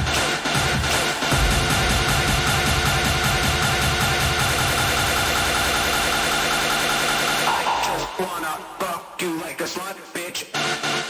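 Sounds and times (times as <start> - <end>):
hard techno dance music: 0.0 - 11.0.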